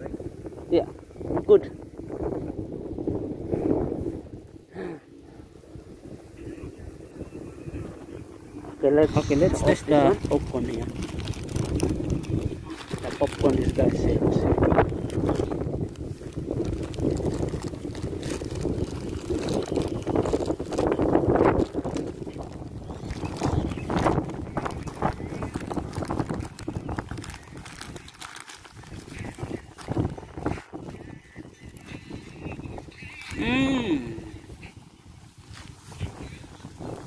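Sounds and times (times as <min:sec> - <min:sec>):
wind buffeting microphone: 0:00.0 - 0:37.0
plastic bag crinkling: 0:09.2 - 0:31.0.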